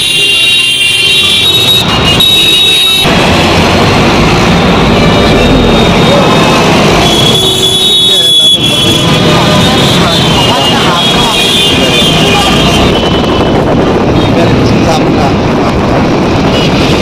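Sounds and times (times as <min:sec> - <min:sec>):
vehicle engines and road noise: 0:00.0 - 0:17.0
voices: 0:04.8 - 0:16.0.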